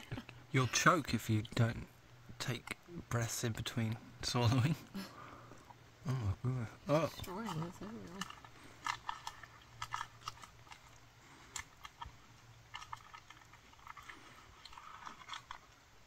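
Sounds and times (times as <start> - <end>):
food being chewed: 6.9 - 16.0.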